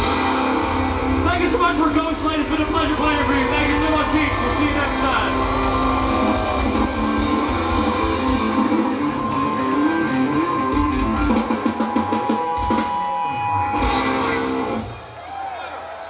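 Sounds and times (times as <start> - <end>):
live rock band: 0.0 - 15.1.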